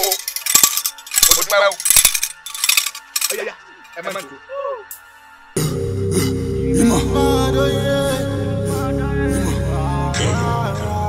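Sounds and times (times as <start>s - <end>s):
handbell jangling: 0.0s - 3.4s
man's voice: 3.2s - 4.9s, 5.6s - 11.0s.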